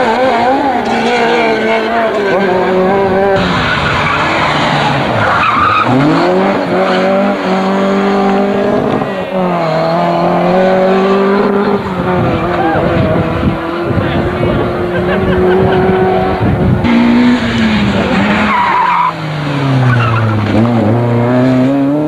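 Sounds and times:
rally car engines revving: 0.0s - 22.0s.

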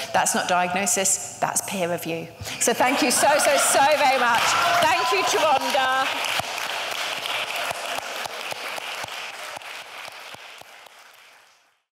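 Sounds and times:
audience applause: 2.9s - 11.9s.

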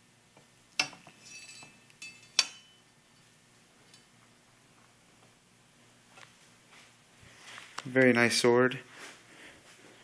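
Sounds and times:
metal sword clinking on stand: 0.8s - 2.8s.

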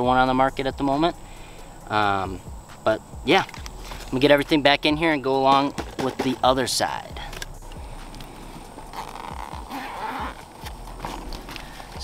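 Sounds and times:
zipper pulled open: 8.9s - 12.0s.

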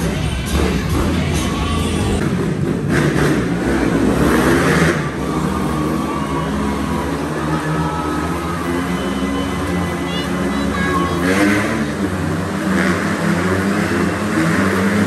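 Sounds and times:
motorcycle engine revving: 0.0s - 15.0s.

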